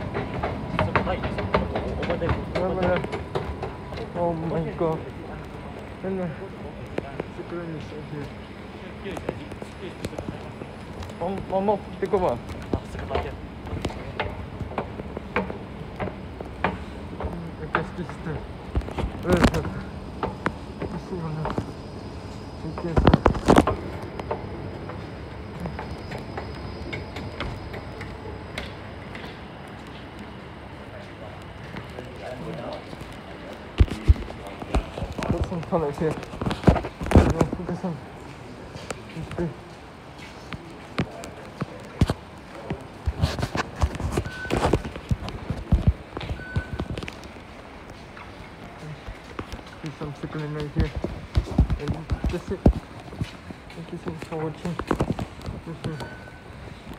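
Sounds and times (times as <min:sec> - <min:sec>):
fast footsteps on stone tiles: 0:00.0 - 0:30.2, 0:31.0 - 0:56.9
indistinct voices: 0:00.0 - 0:56.9
steady low hum: 0:00.0 - 0:56.9.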